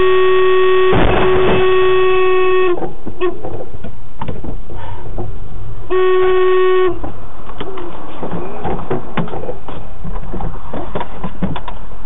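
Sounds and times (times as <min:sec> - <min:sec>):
car horn blast: 0:00.0 - 0:03.4, 0:05.9 - 0:07.1.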